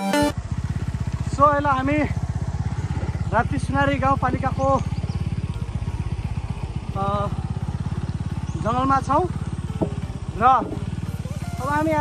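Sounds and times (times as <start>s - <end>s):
motorcycle engine running: 0.1s - 12.0s.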